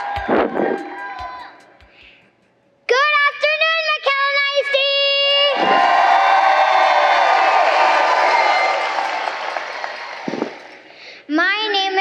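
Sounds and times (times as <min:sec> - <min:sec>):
audience applauding and cheering: 0:00.0 - 0:01.8, 0:05.5 - 0:11.1.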